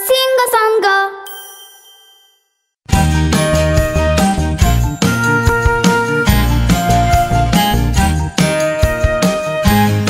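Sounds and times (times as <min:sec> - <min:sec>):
bell-like jingle chime: 0:01.2 - 0:02.8
backing music with bass and beat: 0:02.9 - 0:10.0.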